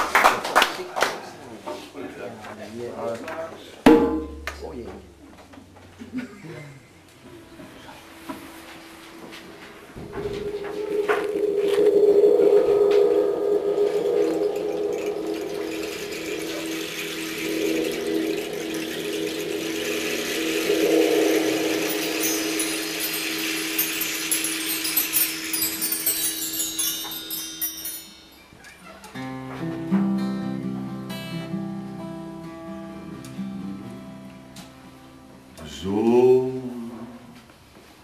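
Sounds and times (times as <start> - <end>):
long low ringing tone: 4.0 - 4.9, 8.1 - 28.5
bar chimes shimmering: 10.2 - 28.9.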